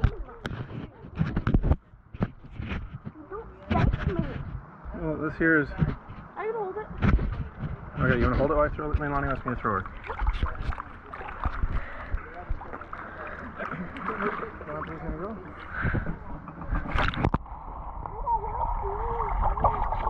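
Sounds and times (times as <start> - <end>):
pool water sloshing: 7.4 - 20.0
muffled underwater sound: 9.3 - 20.0
splash into pool: 18.2 - 20.0.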